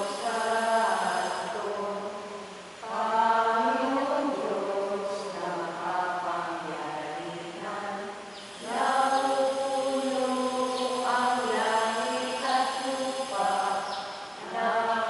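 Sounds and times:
voices singing a hymn: 0:00.0 - 0:15.0.

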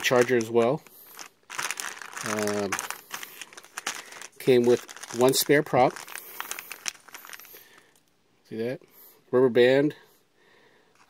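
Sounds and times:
plastic bag crinkling: 0:00.0 - 0:08.0.

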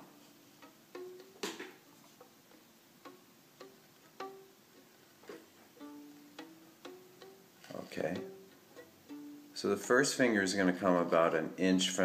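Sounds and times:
fingertips tapping fiddle string: 0:00.0 - 0:09.7.

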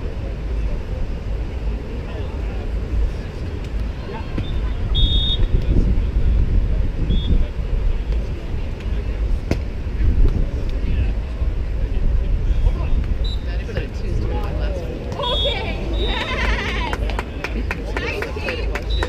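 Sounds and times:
wind rumbling on microphone: 0:00.0 - 0:17.0
distant voices: 0:00.0 - 0:19.0
shrill referee's whistle: 0:04.4 - 0:05.5, 0:13.2 - 0:13.5, 0:15.2 - 0:16.3.

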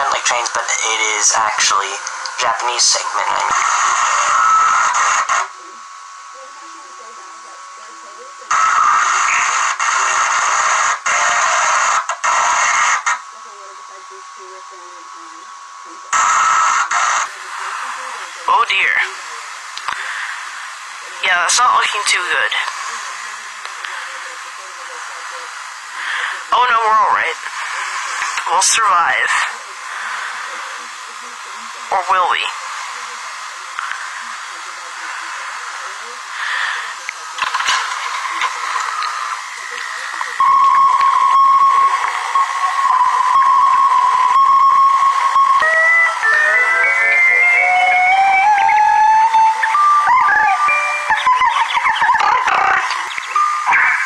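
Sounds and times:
person speaking: 0:00.0 - 0:05.8, 0:17.0 - 0:44.2
faint music from tape: 0:00.0 - 0:54.0
loud noise with steady tone: 0:00.0 - 0:54.0
static hiss: 0:00.0 - 0:54.0.

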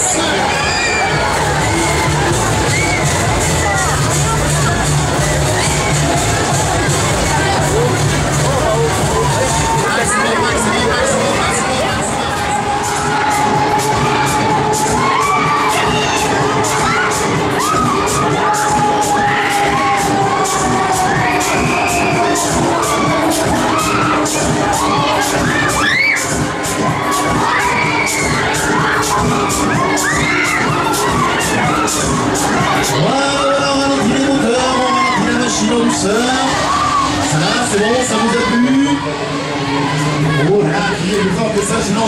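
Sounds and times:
riders screaming: 0:00.0 - 0:03.7
loud ride music with beat: 0:00.0 - 0:42.0.

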